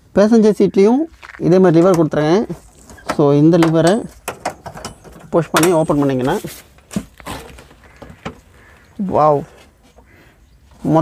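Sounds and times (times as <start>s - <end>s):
man talking: 0.0s - 4.2s, 5.2s - 6.7s, 9.0s - 9.7s, 10.8s - 11.0s.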